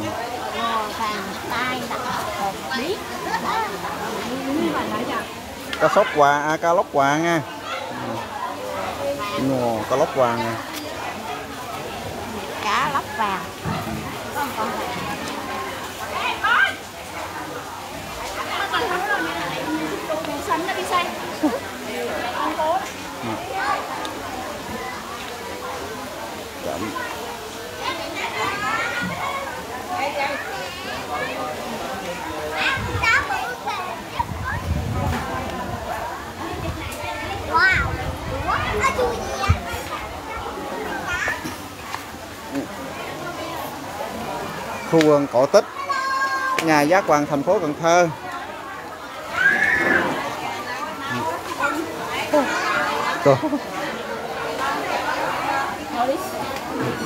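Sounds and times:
children chattering: 0:00.0 - 0:57.0.

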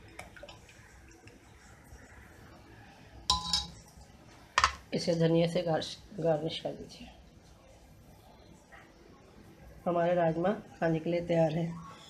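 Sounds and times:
dishes clinking: 0:03.3 - 0:03.9.

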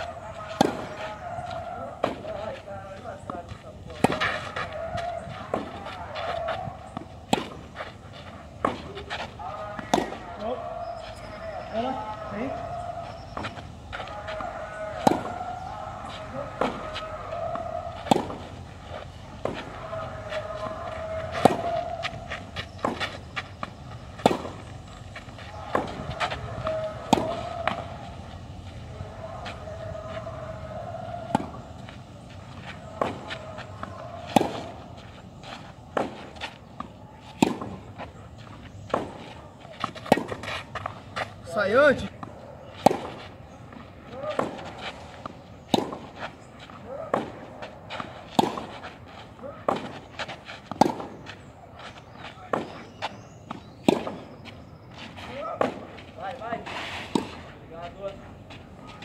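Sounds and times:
ball bounces: 0:00.4 - 0:02.4, 0:08.6 - 0:10.6, 0:14.3 - 0:18.6, 0:20.6 - 0:24.7, 0:25.4 - 0:28.0, 0:32.8 - 0:35.0, 0:35.8 - 0:37.9, 0:38.8 - 0:41.4, 0:44.1 - 0:46.1, 0:52.4 - 0:54.4
racket striking tennis ball: 0:00.4 - 0:02.4, 0:03.2 - 0:07.8, 0:08.6 - 0:10.3, 0:13.4 - 0:18.6, 0:19.4 - 0:28.0, 0:31.1 - 0:41.4, 0:42.2 - 0:43.3, 0:44.1 - 0:51.3, 0:52.1 - 0:54.4, 0:55.1 - 0:57.5.

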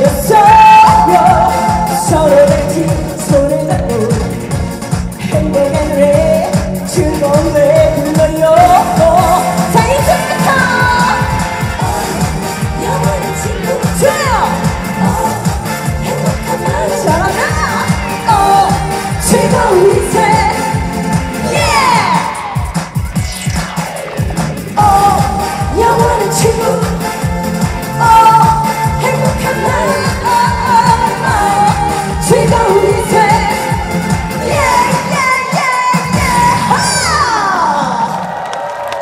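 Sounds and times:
woman singing pop song: 0:00.0 - 0:23.0, 0:24.7 - 0:38.3
backing track with drum beat: 0:00.0 - 0:37.0
audience cheering: 0:37.0 - 0:39.0.

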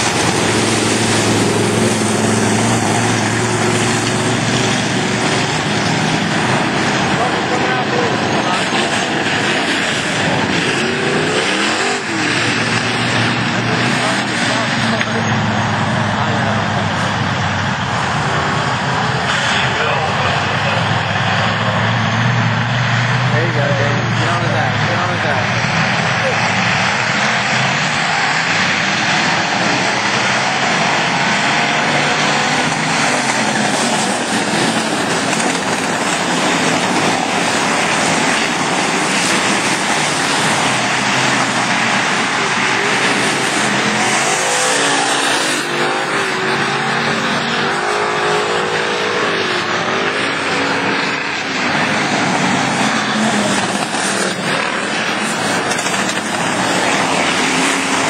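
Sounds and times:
stock car engines racing: 0:00.0 - 0:58.0.

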